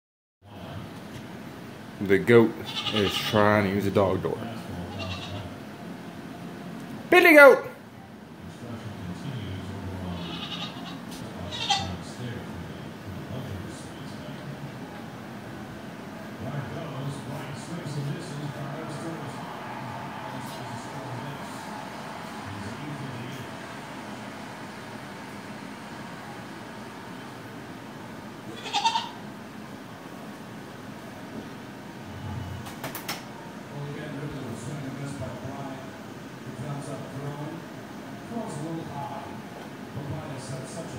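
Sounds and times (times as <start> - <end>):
goat bleating: 2.6 - 3.5, 4.8 - 5.5, 10.1 - 12.0, 28.5 - 29.2.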